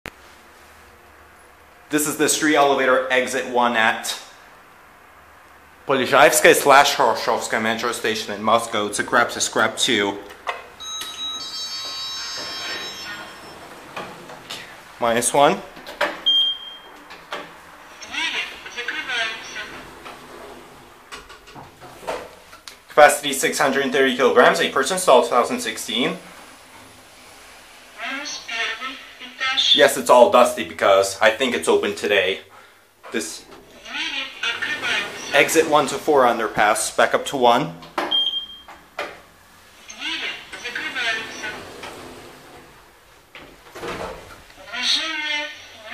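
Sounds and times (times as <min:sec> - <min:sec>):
lift doors sliding open: 0:10.2 - 0:22.6, 0:23.5 - 0:28.6, 0:33.2 - 0:36.9, 0:37.8 - 0:44.6
lift chime ringing: 0:10.7 - 0:14.0
steady high beep: 0:10.8 - 0:13.6.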